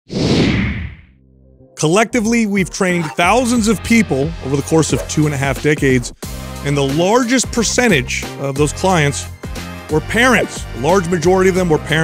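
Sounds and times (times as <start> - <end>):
whoosh sound effect: 0.1 - 1.1
man speaking: 1.8 - 9.3.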